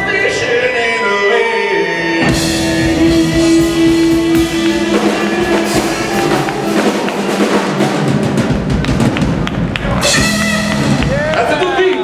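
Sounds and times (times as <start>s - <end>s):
blues band playing: 2.1s - 12.0s
drum and cymbal hits: 2.2s - 11.6s.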